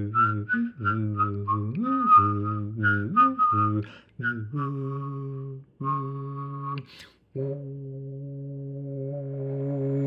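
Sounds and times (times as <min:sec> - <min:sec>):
whistling melody: 0:00.0 - 0:07.1
man singing: 0:00.0 - 0:10.0.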